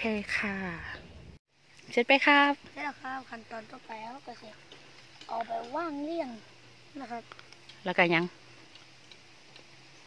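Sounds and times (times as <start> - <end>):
soft ticks: 8.7 - 9.7.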